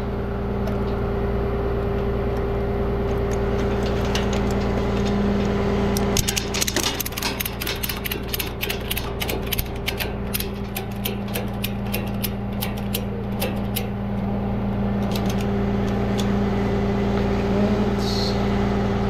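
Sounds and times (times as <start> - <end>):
truck engine idling: 0.0 - 19.0
metallic ratchet clicks: 6.0 - 14.3, 15.0 - 15.5.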